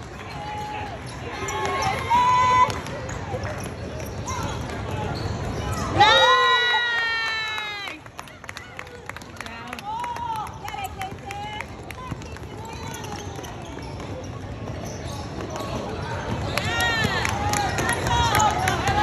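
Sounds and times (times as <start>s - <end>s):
voices of players and spectators: 0.0s - 19.0s
shoe squeaks: 0.2s - 6.0s, 12.0s - 17.1s.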